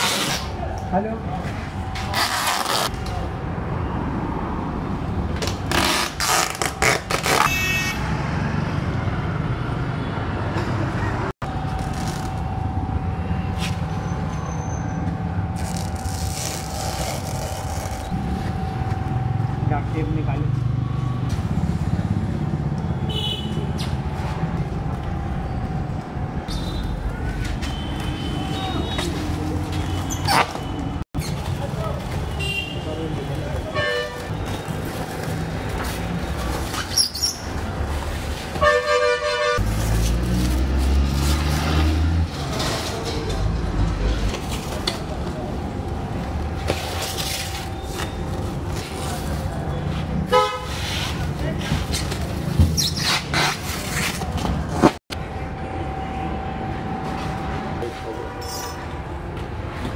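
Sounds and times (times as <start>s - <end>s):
low rumble of traffic: 0.0s - 59.9s
vehicle horn toot: 7.4s - 8.1s, 27.6s - 29.2s, 38.6s - 39.6s, 50.3s - 50.7s.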